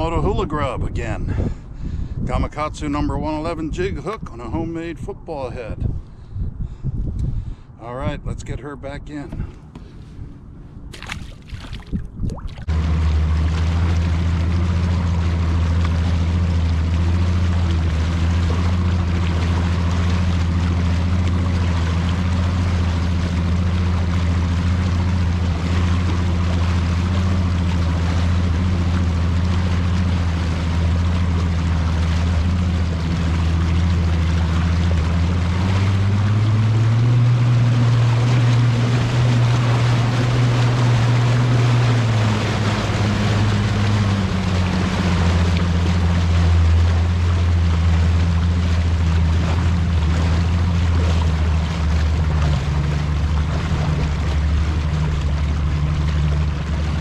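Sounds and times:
outboard motor running: 0.0s - 8.1s, 9.0s - 57.0s
rush of wind and water: 0.0s - 57.0s.

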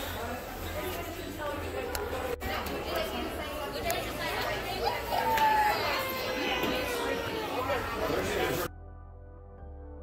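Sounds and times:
indistinct chatter of people: 0.0s - 8.8s.

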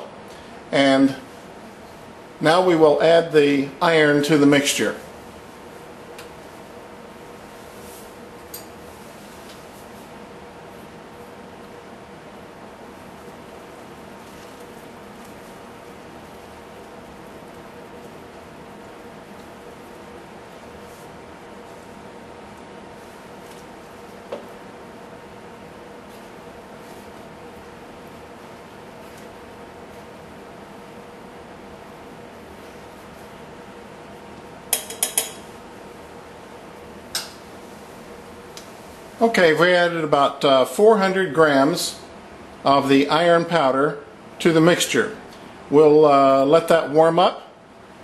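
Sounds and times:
faint steady hiss: 0.0s - 48.0s.

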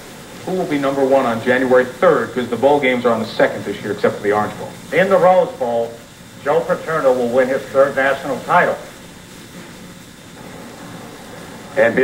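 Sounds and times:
low tape hiss and hum: 0.0s - 12.0s.

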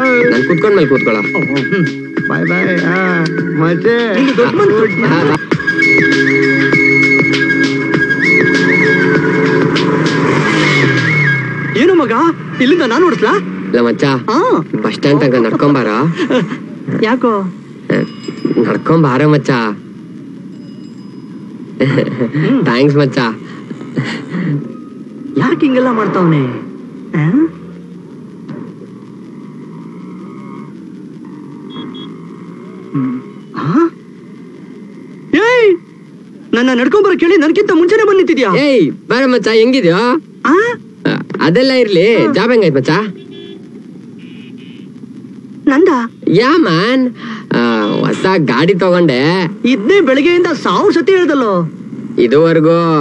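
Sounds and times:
background music with steady beat: 0.0s - 12.6s
motorcycle engine running: 0.0s - 53.0s
traffic: 0.0s - 53.0s
short high beeps: 17.9s - 21.8s, 31.6s - 33.6s, 43.1s - 43.6s, 44.2s - 44.9s
vocal exclamations: 29.5s - 35.3s.

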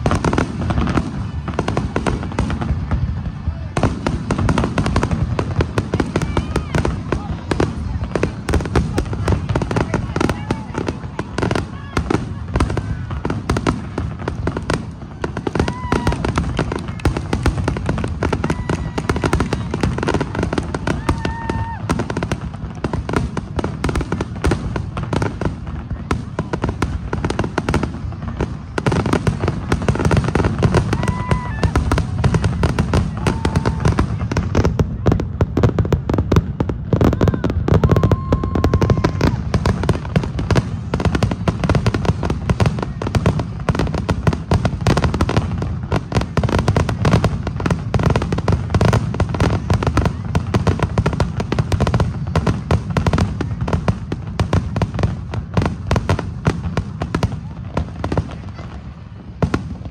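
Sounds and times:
firework bangs and crackling: 0.0s - 59.9s.

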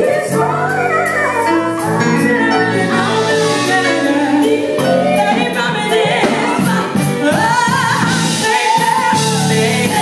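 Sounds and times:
female vocal group singing gospel: 0.0s - 10.0s.

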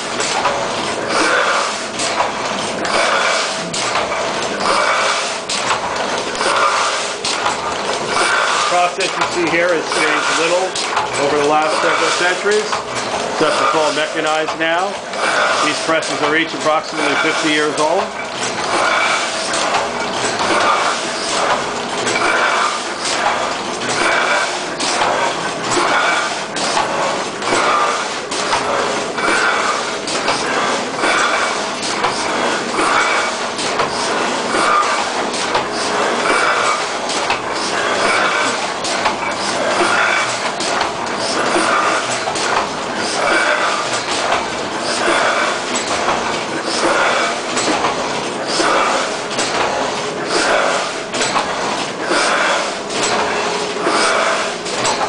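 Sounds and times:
printing press clattering: 0.0s - 55.0s.

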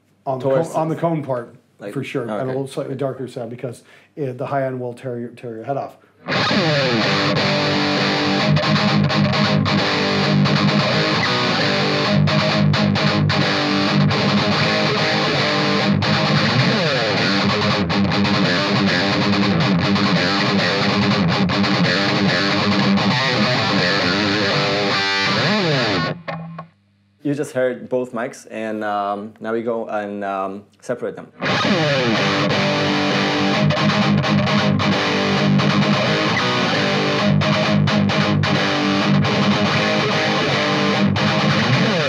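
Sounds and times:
distorted electric guitar riff: 6.2s - 27.2s, 31.3s - 42.0s.

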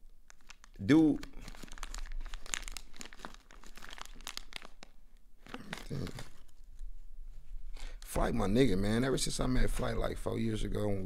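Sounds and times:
packaging crinkling: 0.0s - 6.8s.

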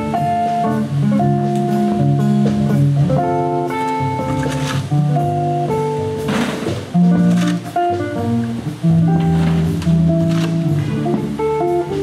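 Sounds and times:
jazz quartet playing: 0.0s - 12.0s.

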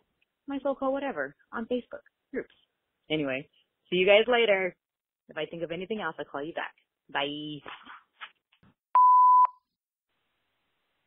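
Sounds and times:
voicemail beep: 9.0s - 9.7s.

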